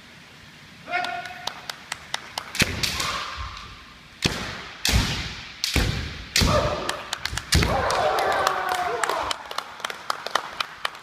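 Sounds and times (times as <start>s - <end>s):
bamboo swords clacking: 2.6s - 7.9s
people shouting: 6.4s - 7.0s, 7.6s - 9.3s.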